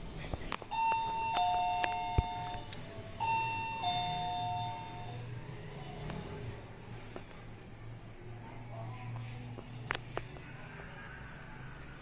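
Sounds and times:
two-tone door chime: 0.7s - 5.3s.

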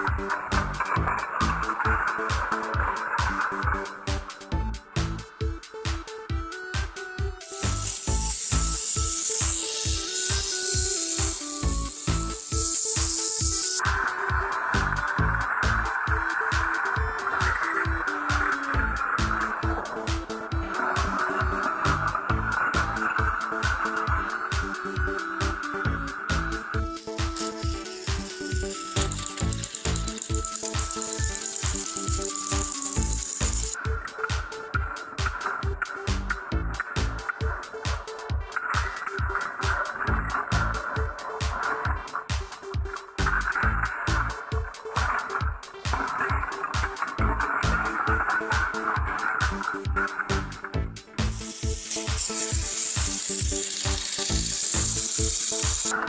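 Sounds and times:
electronic music with beat: 0.0s - 56.0s
high hiss: 7.4s - 15.0s, 51.2s - 56.0s
toy train whirring gears: 7.4s - 36.0s, 51.3s - 56.0s.

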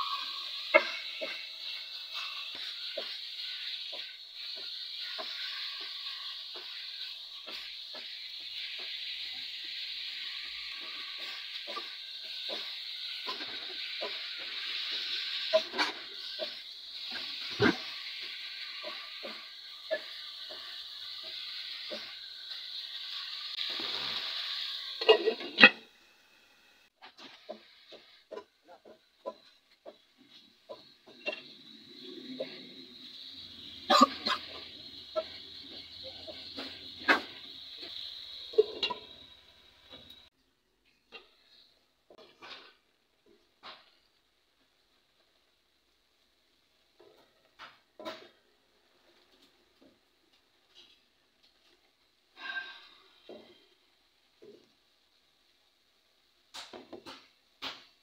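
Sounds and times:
meat sizzling in a pot: 0.0s - 58.0s.

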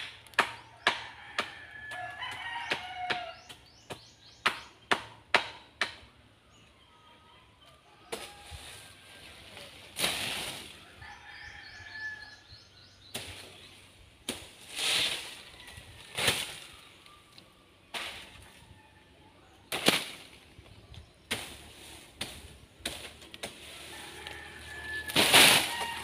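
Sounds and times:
palm fronds swishing and rustling: 8.1s - 11.1s, 13.1s - 18.7s, 19.7s - 26.0s
fronds cracking: 14.2s - 18.4s, 19.7s - 26.0s.

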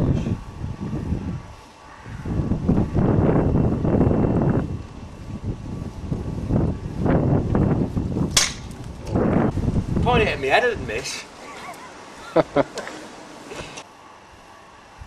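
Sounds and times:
muffled rumbling noise: 0.0s - 10.9s
rifle shot: 8.4s - 8.7s.

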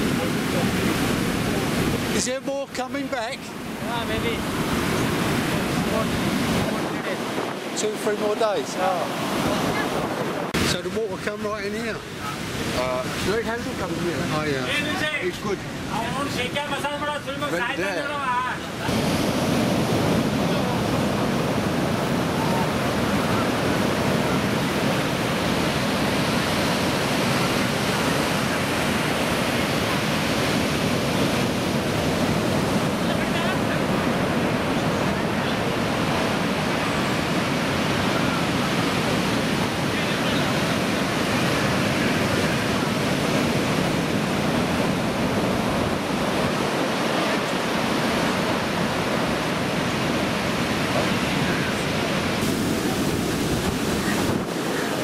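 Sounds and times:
heavy surf breaking on beach: 0.0s - 55.0s.

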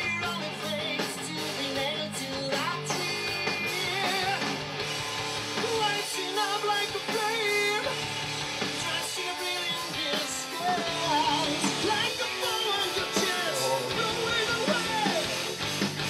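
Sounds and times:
rock song with sung vocal: 0.0s - 16.0s.

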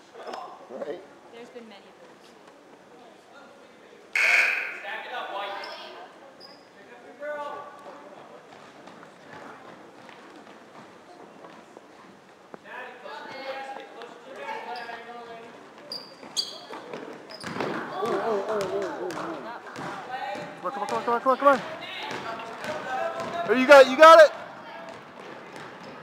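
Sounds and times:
loud shout: 4.2s - 5.0s
voices calling out: 4.2s - 5.9s
basketball bouncing on wooden floor: 22.1s - 23.5s, 24.9s - 26.0s.

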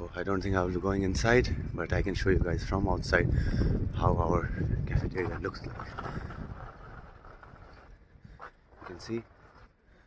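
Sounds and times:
wind rumble on microphone: 0.0s - 9.7s.

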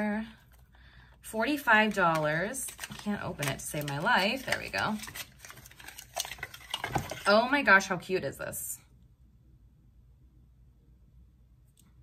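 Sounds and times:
cardboard box rustling: 2.7s - 7.3s.

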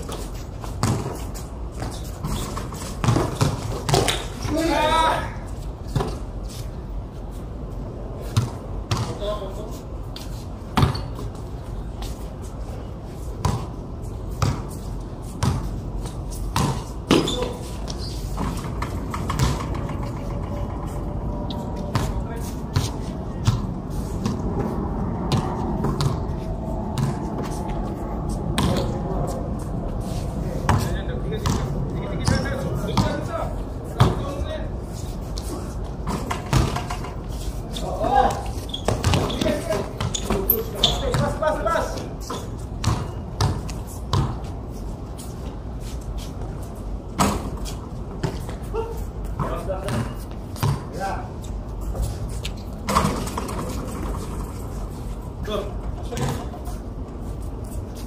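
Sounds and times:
basketball bouncing on concrete: 0.8s - 1.2s, 1.8s - 4.2s, 8.3s - 9.4s, 10.8s - 11.2s, 13.4s - 13.7s, 14.4s - 14.7s, 15.4s - 15.7s, 16.5s - 20.3s, 21.9s - 24.4s, 25.3s - 26.3s, 27.0s - 27.2s, 28.6s - 29.0s, 30.7s - 33.4s, 34.0s - 34.4s, 36.0s - 37.2s, 38.2s - 44.5s, 49.3s - 51.1s, 55.9s - 56.6s
players' voices and shouts: 4.4s - 5.5s.

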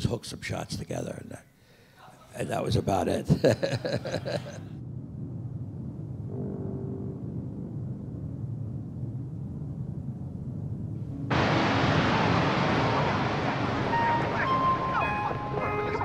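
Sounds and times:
low rumble: 3.6s - 16.0s
pitched tones: 11.1s - 16.0s
loud rushing noise: 11.3s - 16.0s.

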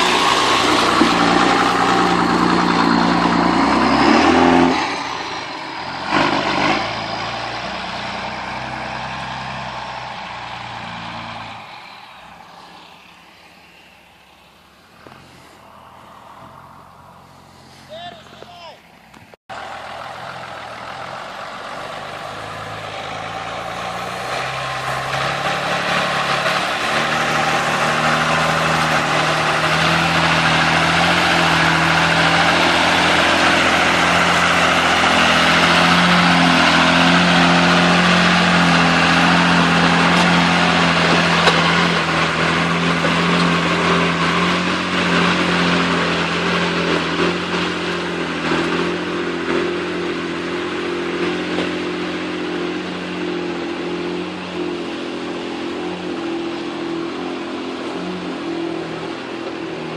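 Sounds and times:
off-road vehicle engine: 0.0s - 59.9s
water and tyres rushing: 0.0s - 59.9s.

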